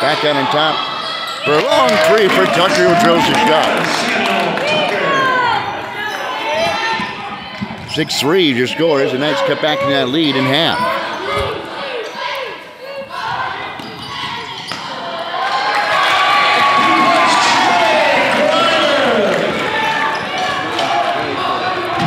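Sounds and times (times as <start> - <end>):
spectators cheering: 0.0 - 7.4, 14.3 - 22.0.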